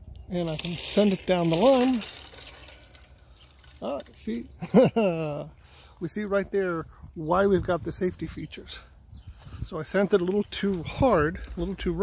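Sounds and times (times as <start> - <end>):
carriage rattling along ropes: 0.2 - 5.6.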